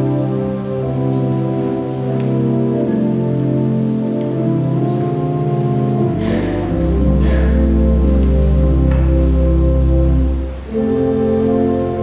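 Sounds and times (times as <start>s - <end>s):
slow keyboard music: 0.0s - 12.0s.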